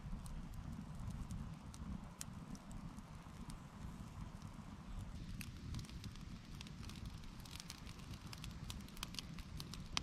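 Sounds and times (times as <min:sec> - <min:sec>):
campfire crackling and popping: 0:00.0 - 0:10.0.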